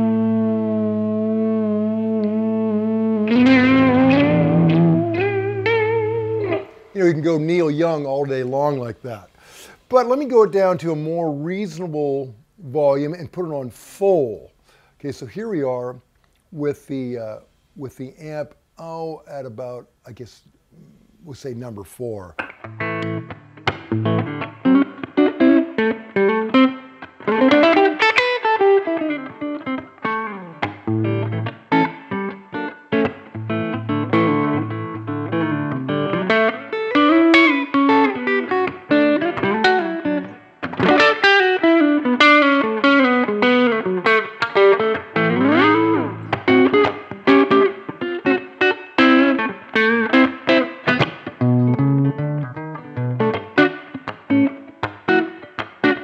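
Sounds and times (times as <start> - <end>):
clean electric guitar: 0.0 - 9.7, 14.3 - 56.0.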